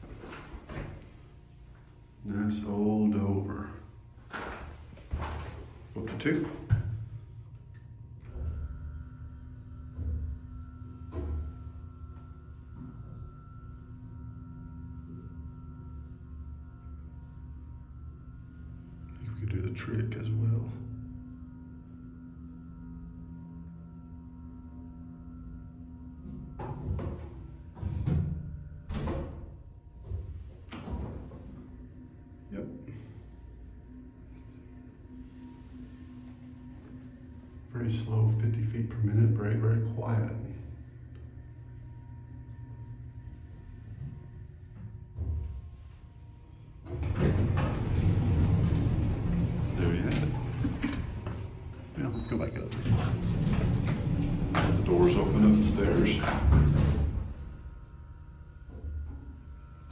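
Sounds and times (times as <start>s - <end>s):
steady electrical hum: 0.0s - 59.9s
elevator doors sliding shut: 4.2s - 7.3s, 43.2s - 58.0s.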